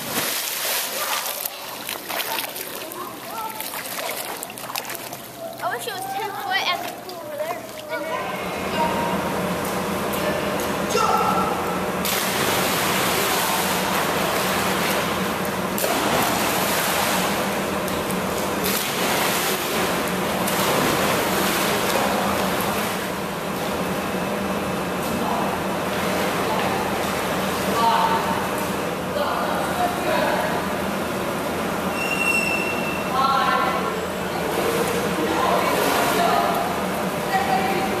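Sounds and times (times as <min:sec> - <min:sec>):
water splashing in pool: 0:00.0 - 0:08.1, 0:12.0 - 0:24.0, 0:34.4 - 0:38.0
constant low hum: 0:00.0 - 0:32.0
children's voices: 0:01.1 - 0:09.0.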